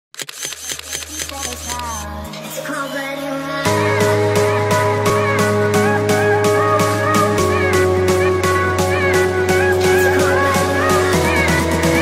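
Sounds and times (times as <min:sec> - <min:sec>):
camera shutter clicks: 0:00.2 - 0:02.1.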